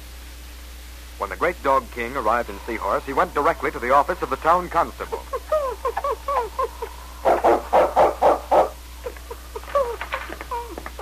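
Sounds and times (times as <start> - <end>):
dog barking: 7.2 - 8.8.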